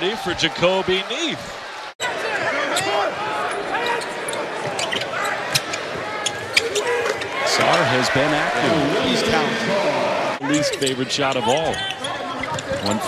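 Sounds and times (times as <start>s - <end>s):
arena crowd noise: 0.0s - 13.0s
sneakers squeaking: 2.0s - 7.9s, 10.5s - 13.0s.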